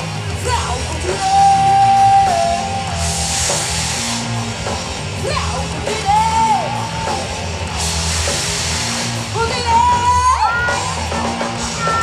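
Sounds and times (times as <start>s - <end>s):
live pop band music: 0.0s - 12.0s
hiss of gas jets: 3.0s - 4.8s, 7.7s - 9.3s.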